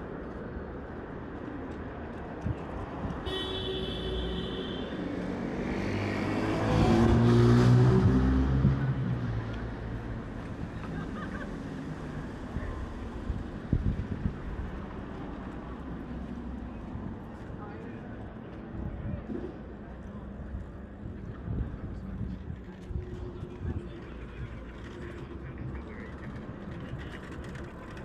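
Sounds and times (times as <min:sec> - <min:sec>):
traffic hum: 0:00.0 - 0:28.0.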